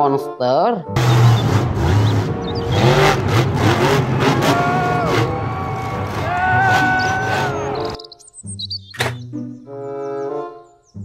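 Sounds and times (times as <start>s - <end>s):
truck engine revving: 1.0s - 8.0s.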